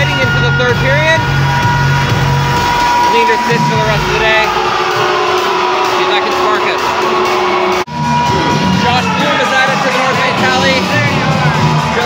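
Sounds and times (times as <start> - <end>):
music over sound system: 0.0 - 12.0
spectators' voices: 2.8 - 12.0.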